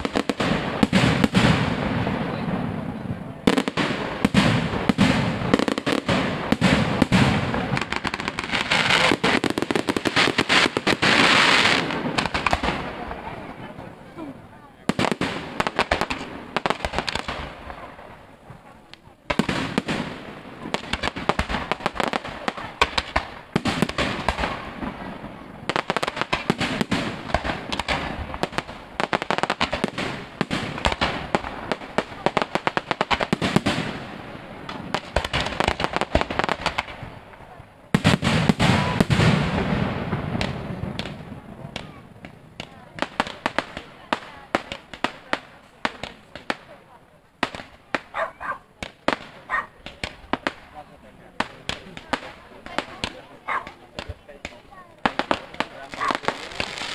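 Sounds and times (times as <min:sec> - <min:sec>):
fireworks crackling and popping: 0:00.0 - 0:56.9.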